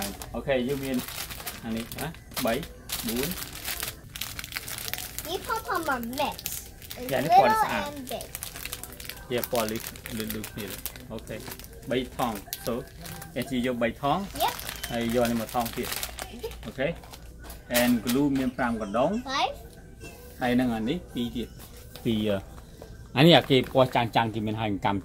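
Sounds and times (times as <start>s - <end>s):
plastic bags crinkling: 0.0s - 18.5s, 23.2s - 24.2s
voices talking: 5.2s - 16.7s.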